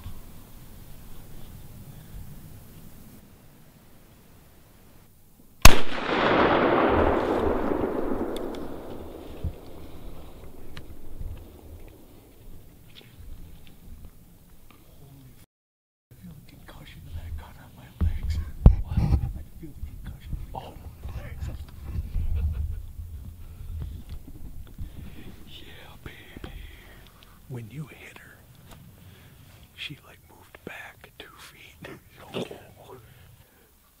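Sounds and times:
rifle shot: 0:05.6 - 0:12.3
rolling echo through woods: 0:05.6 - 0:14.8
men whispering: 0:16.2 - 0:21.9, 0:24.9 - 0:33.6.

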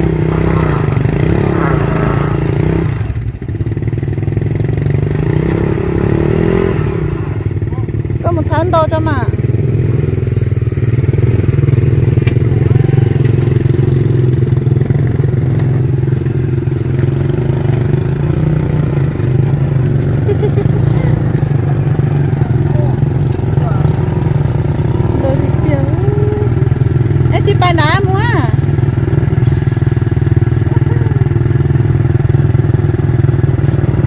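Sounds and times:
motorcycle engine droning: 0:00.0 - 0:34.0.

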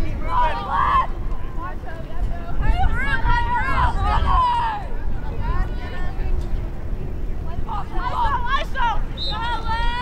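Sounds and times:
voices shouting: 0:00.0 - 0:06.2, 0:07.5 - 0:10.0.

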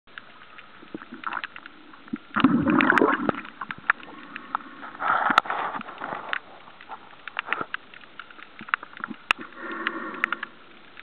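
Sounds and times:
underwater clicks and crackles: 0:00.1 - 0:11.0
water rushing: 0:00.1 - 0:11.0
underwater hiss: 0:09.4 - 0:10.9.

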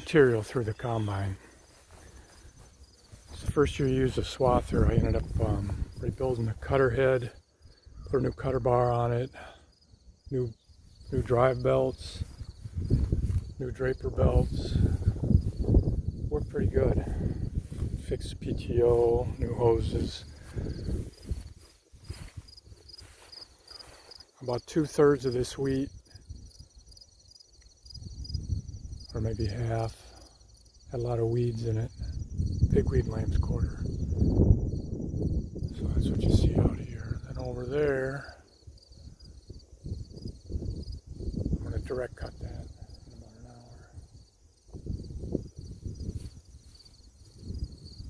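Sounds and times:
crickets chirping: 0:00.0 - 0:48.0
wind buffeting microphone: 0:01.0 - 0:06.8, 0:11.9 - 0:23.9, 0:27.9 - 0:29.4, 0:31.9 - 0:37.9, 0:39.0 - 0:48.0.

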